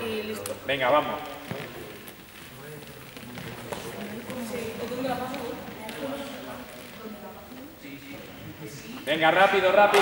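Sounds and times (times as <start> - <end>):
footsteps on sports hall floor: 0.9 - 7.2
faint voices: 1.2 - 9.0.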